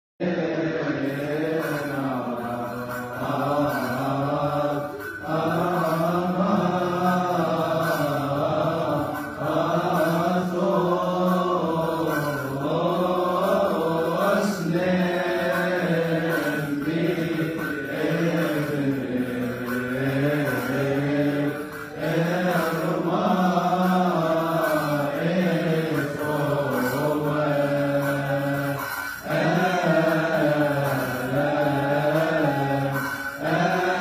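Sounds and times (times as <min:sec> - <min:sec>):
men chanting in long held notes: 0:00.2 - 0:34.0.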